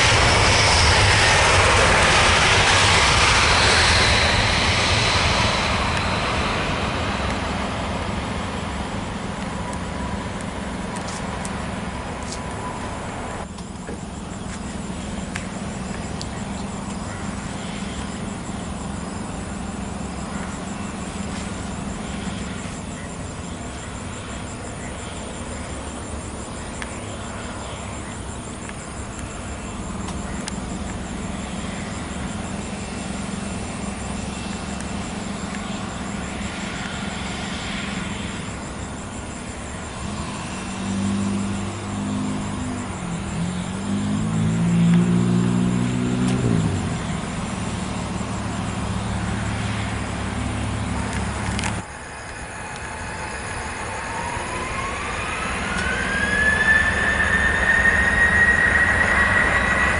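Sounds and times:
distant traffic: 0.0s - 59.9s
jet airliner taxiing rumble: 0.0s - 59.9s
road vehicle engine: 0.0s - 59.9s.

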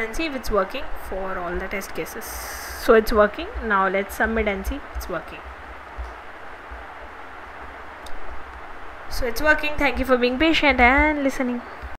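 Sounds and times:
background hiss: 0.0s - 11.9s.

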